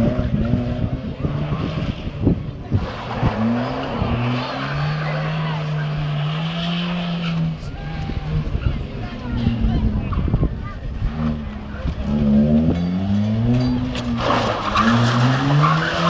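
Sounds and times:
car engine revving: 0:00.0 - 0:16.0
tyres skidding: 0:00.0 - 0:16.0.

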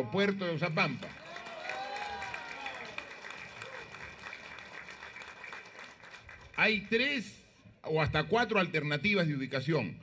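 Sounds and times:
crowd clapping: 0:00.8 - 0:07.0.

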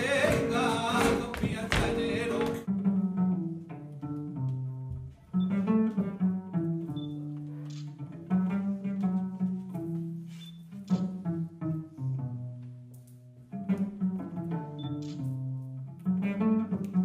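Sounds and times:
flamenco guitar and singing: 0:00.0 - 0:03.0
cello playing slow melody: 0:02.0 - 0:17.0.

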